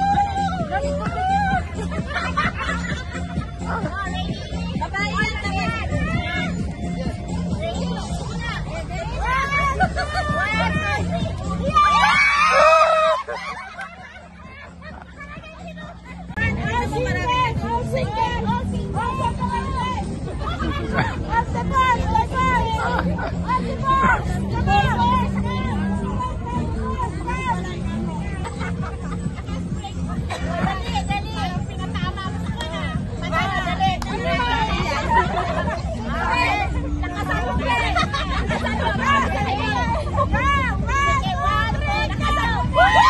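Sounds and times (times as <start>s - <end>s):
background music with low beat: 0.0s - 43.0s
crowd talking and calling out: 0.0s - 43.0s
high excited voices: 0.0s - 43.0s.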